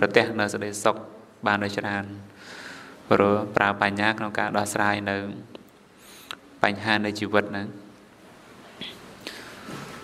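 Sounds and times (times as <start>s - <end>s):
man speaking: 0.0s - 2.4s, 3.1s - 5.6s, 6.6s - 8.0s
man breathing in: 2.4s - 3.0s.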